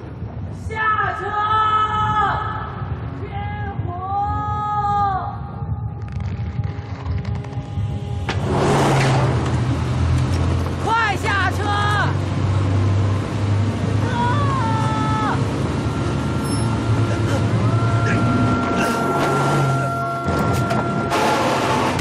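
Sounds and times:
jeep engine rumbling: 0:07.4 - 0:22.0
people shouting: 0:14.0 - 0:15.4, 0:17.2 - 0:21.0.

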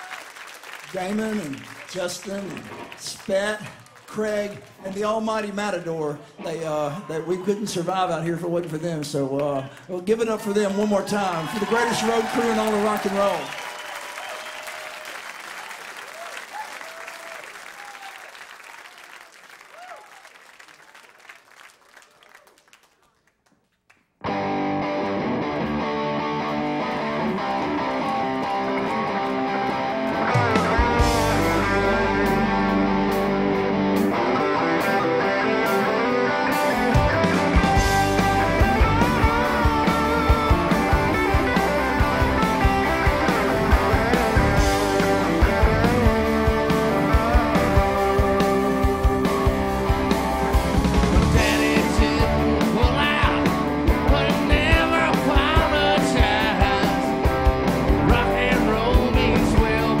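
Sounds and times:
audience applause: 0:00.0 - 0:05.2, 0:09.4 - 0:24.0, 0:26.5 - 0:32.4, 0:36.9 - 0:52.3
rock band playing: 0:24.2 - 1:00.0.

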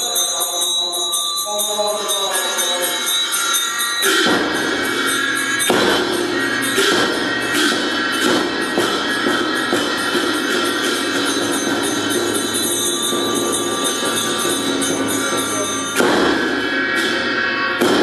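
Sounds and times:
chanting: 0:00.0 - 0:18.0
ringing handbell: 0:00.0 - 0:18.0
cymbals crashing: 0:01.7 - 0:18.0
large drum beats: 0:04.1 - 0:18.0.

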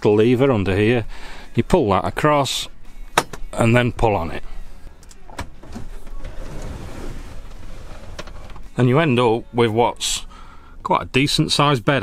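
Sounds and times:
bed frame sliding on rails: 0:05.7 - 0:08.6.

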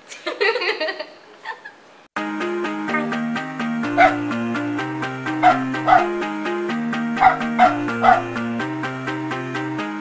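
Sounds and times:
music with stepping melody: 0:02.2 - 0:10.0
dog barks: 0:04.0 - 0:04.3, 0:05.4 - 0:06.2, 0:07.2 - 0:08.4.

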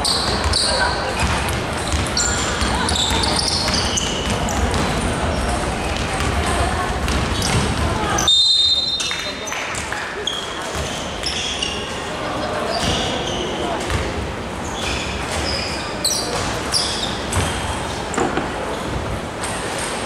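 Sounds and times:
players shouting and chattering: 0:00.0 - 0:20.0
basketball dribbling on wooden court: 0:01.2 - 0:02.8
shrill referee's whistle blast: 0:08.3 - 0:09.1.

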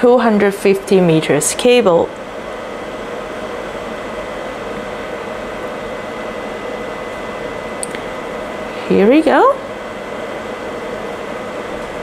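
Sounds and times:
fan-like hum: 0:00.0 - 0:12.0
small click: 0:07.8 - 0:08.0.

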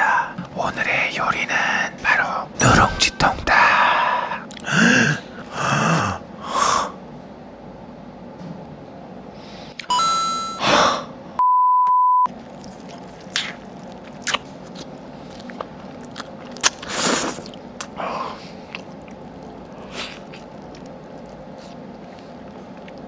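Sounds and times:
electronic beep: 0:02.6 - 0:03.2
short tone: 0:02.6 - 0:03.2
person chewing: 0:04.4 - 0:04.8, 0:12.3 - 0:23.0
crispy chicken crunching: 0:12.3 - 0:23.0.

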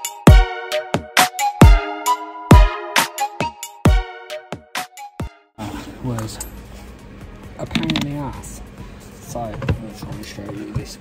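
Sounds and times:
workshop background noise: 0:05.6 - 0:11.0.

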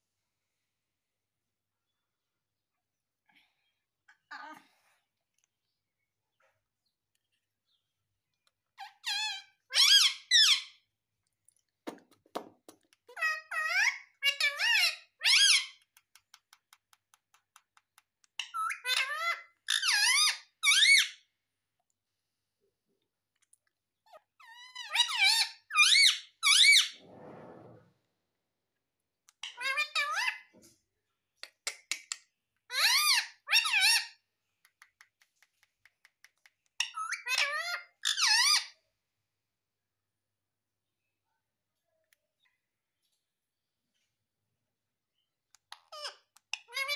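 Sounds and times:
parakeet squeaky calls: 0:08.8 - 0:10.8, 0:13.1 - 0:15.8, 0:18.4 - 0:21.2, 0:24.4 - 0:27.0, 0:29.4 - 0:30.4, 0:32.7 - 0:34.2, 0:36.8 - 0:38.8, 0:45.8 - 0:46.9.

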